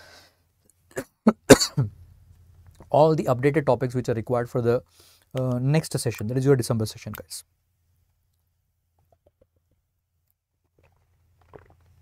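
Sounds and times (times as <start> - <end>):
man coughing: 1.0 - 1.9
man clearing his throat: 1.0 - 2.0.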